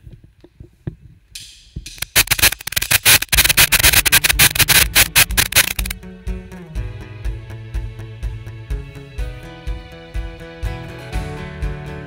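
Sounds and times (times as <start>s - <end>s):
fast drum and cymbal build: 1.9s - 6.4s
band playing guitar chords: 2.0s - 12.0s.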